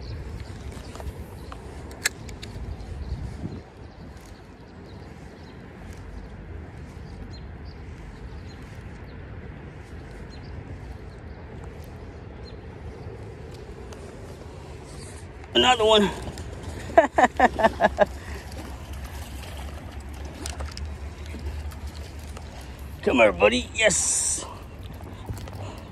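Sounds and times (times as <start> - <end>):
flowing creek: 13.8 - 25.9.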